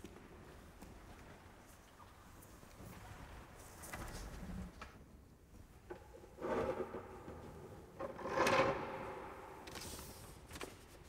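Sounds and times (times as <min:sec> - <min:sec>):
chair scraping on stone floor: 0:08.0 - 0:09.1.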